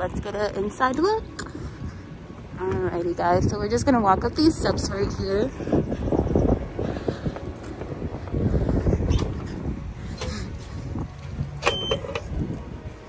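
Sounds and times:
wind buffeting microphone: 0.0s - 13.0s
footsteps on concrete steps: 6.8s - 11.6s
key-card reader beep: 11.6s - 12.3s.

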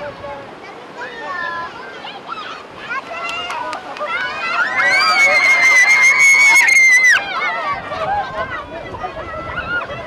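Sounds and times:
children's excited voices: 0.6s - 10.0s
child's high-pitched squeal: 4.4s - 7.7s.

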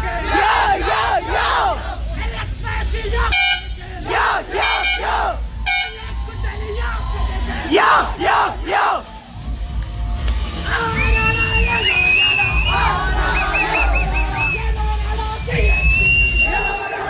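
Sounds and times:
people shouting: 0.0s - 9.3s, 10.6s - 14.6s
loud music: 0.0s - 17.0s
bus air horn blasts: 3.2s - 6.1s.

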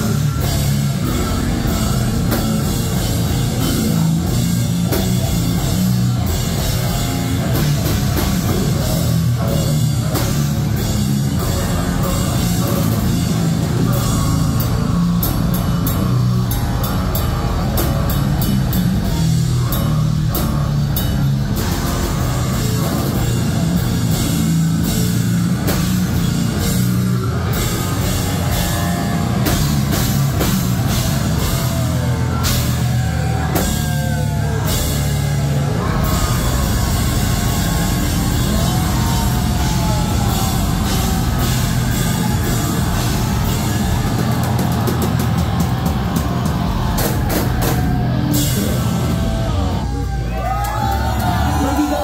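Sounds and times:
drum and cymbal accents: 0.0s - 50.2s
distorted guitars and bass: 0.0s - 52.0s
live metal band playing: 0.0s - 52.0s.

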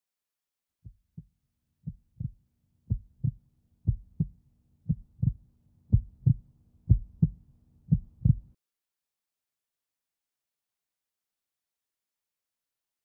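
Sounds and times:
heartbeat thumps: 0.9s - 4.3s, 4.9s - 8.5s.

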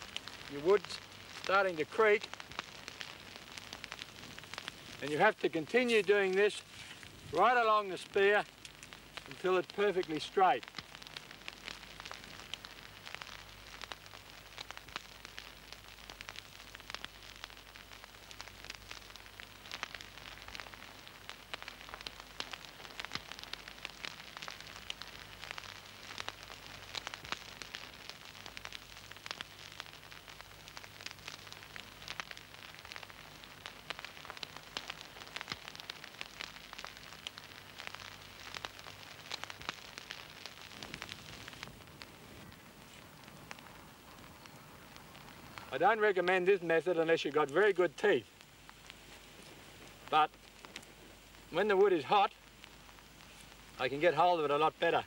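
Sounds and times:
campfire crackling: 0.0s - 55.0s.

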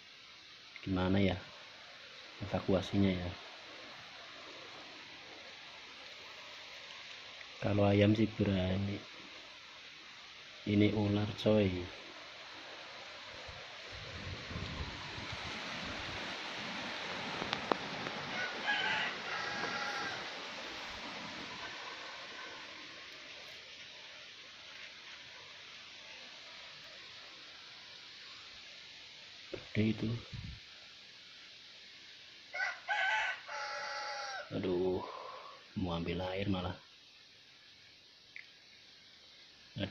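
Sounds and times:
rooster crowing: 18.2s - 20.8s, 32.5s - 35.6s.

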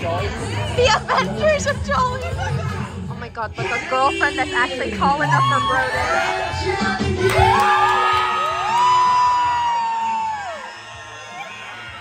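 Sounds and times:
crowd cheering: 5.1s - 12.0s
person cheering woo: 7.3s - 10.7s.

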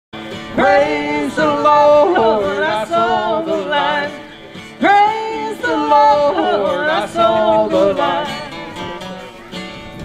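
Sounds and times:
acoustic guitar: 0.2s - 10.0s
man and woman singing in harmony: 0.4s - 8.7s.

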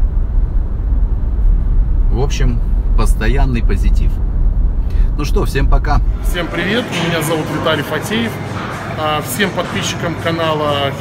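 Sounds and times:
car cabin road rumble: 0.0s - 7.4s.

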